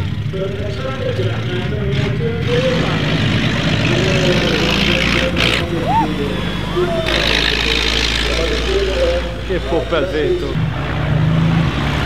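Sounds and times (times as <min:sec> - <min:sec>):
commentator speaking: 0:03.8 - 0:10.6.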